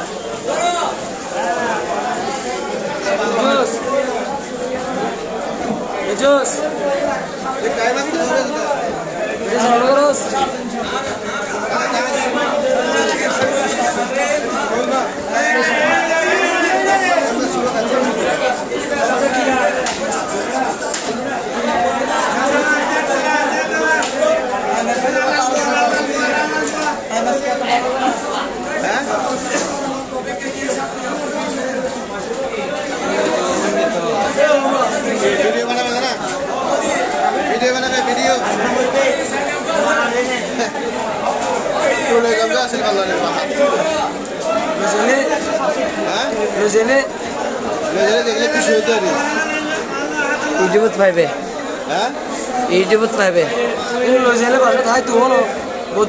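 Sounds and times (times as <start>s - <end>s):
chatter of voices: 0.0s - 56.0s.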